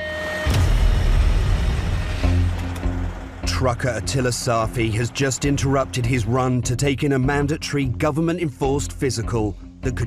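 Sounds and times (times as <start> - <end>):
rushing noise and low rumble: 0.5 - 6.8
truck engine running: 0.5 - 7.8.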